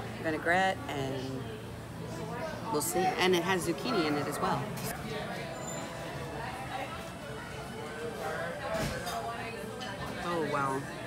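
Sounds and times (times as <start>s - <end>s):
diners talking: 0.0s - 11.0s.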